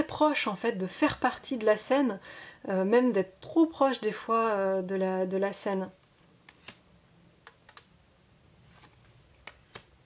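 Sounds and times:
cards clicking and sliding: 6.5 - 6.8.

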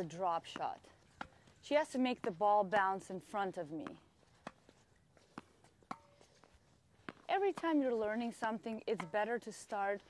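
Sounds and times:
tennis ball struck by racket: 0.5 - 1.4, 3.8 - 4.7, 5.3 - 6.3
tennis ball bouncing on court: 3.7 - 6.2, 7.0 - 9.7.

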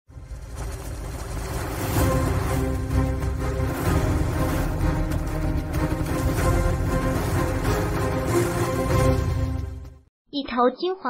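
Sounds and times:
opening music: 0.3 - 10.1.

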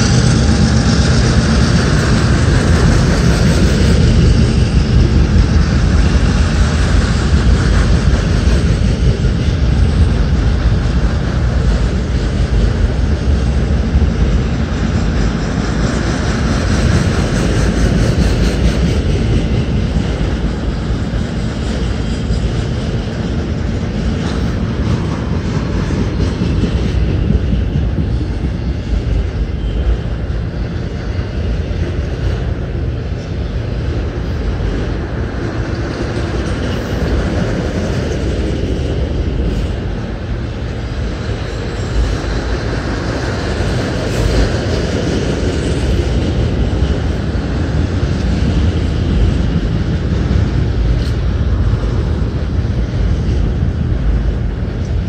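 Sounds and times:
freight cars rolling on rails: 0.0 - 55.0.

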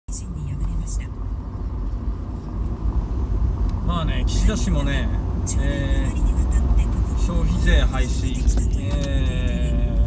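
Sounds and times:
car road and engine noise: 0.1 - 10.0.

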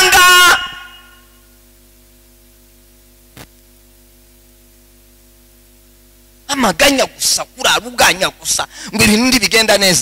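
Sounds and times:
man speaking through a microphone: 0.0 - 1.0, 6.5 - 10.0
faint electrical hum: 0.0 - 10.0.

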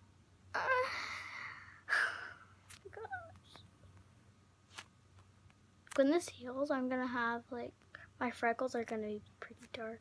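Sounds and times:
girl sighing: 0.5 - 2.6.

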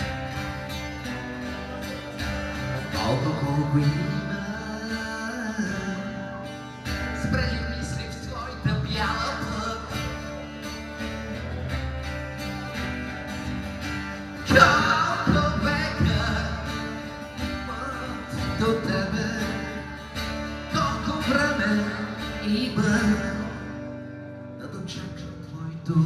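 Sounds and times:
man singing: 0.0 - 26.0
strummed acoustic guitar: 0.0 - 26.0.

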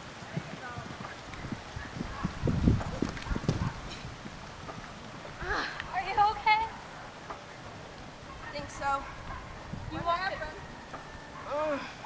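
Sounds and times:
horse hooves cantering on grass: 0.0 - 11.4.

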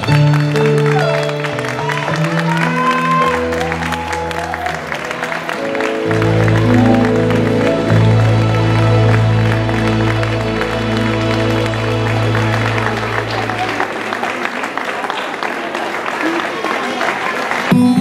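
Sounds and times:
audience applause: 0.0 - 18.0.

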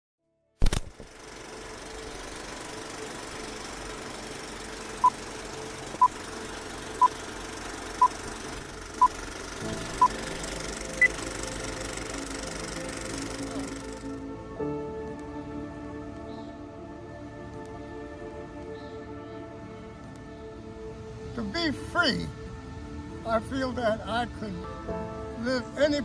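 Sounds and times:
film projector clatter and hiss: 0.6 - 14.2
soft music: 2.1 - 26.0.

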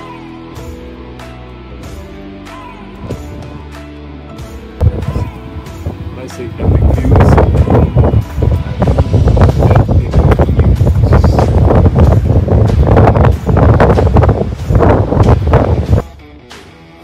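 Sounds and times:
wind buffeting microphone: 4.8 - 16.0.

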